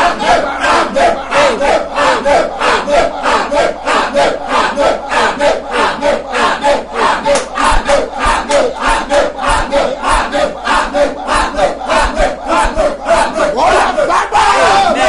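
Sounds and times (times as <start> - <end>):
man praying loudly: 11.6 - 15.0.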